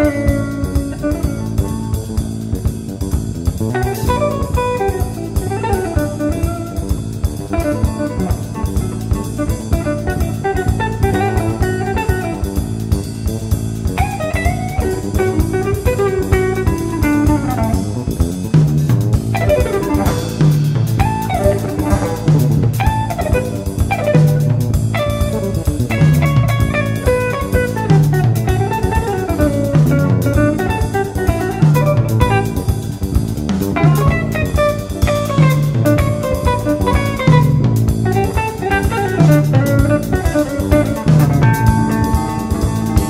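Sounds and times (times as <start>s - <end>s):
electric guitar with bent notes: 0.0s - 43.0s
jazz fusion band playing: 0.0s - 43.0s
repeating low bass figure: 16.5s - 27.0s.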